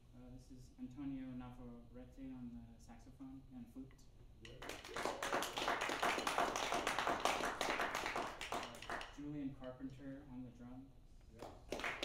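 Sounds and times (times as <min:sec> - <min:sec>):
audience applauding: 0:04.6 - 0:09.1, 0:11.7 - 0:12.0.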